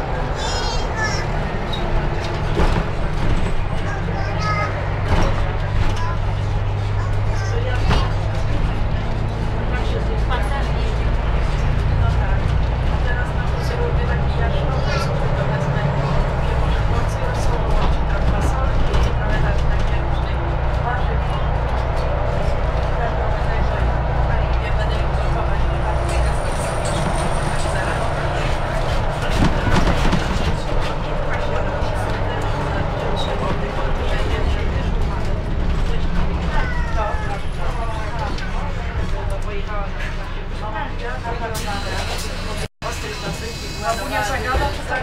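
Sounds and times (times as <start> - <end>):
bus engine deep hum: 0.0 - 45.0
passengers talking indistinctly: 0.0 - 45.0
road and cabin noise: 0.0 - 45.0.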